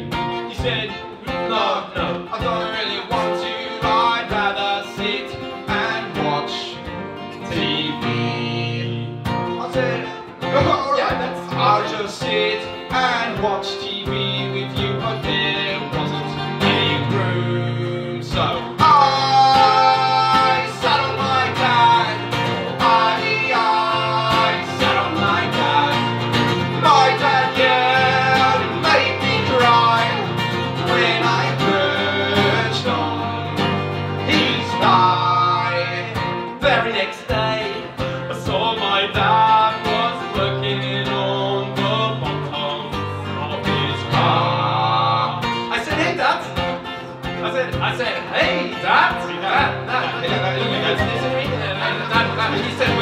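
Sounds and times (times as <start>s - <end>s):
acoustic guitar strumming: 0.0s - 53.0s
man singing: 0.0s - 53.0s.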